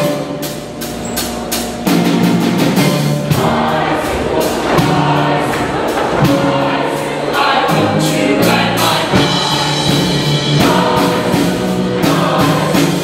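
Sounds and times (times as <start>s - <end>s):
choir singing in harmony: 0.0s - 13.0s
drum hits: 0.0s - 13.0s
instrumental accompaniment: 0.0s - 13.0s.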